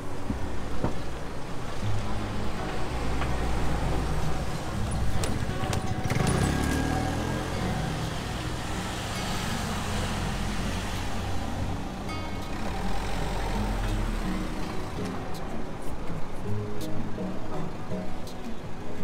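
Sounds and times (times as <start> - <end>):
minibus engine rumbling past: 1.7 - 15.7
scooter engine pulling away: 4.6 - 14.6.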